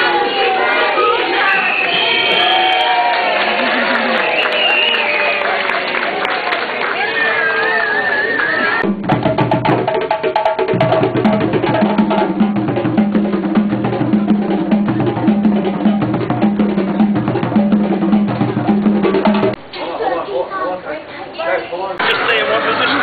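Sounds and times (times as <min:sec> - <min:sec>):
wood-block-like strikes: 0:08.8 - 0:19.6
drum and percussion music: 0:08.8 - 0:19.8.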